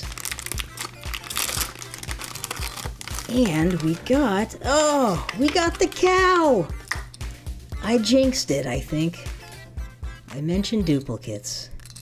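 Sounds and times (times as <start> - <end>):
plastic pouch crinkling and tearing: 0.0 - 4.2.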